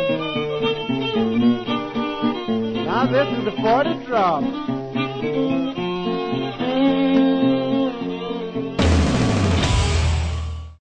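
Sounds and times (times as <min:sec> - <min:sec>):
dense music burst with deep bass: 0:08.8 - 0:10.8.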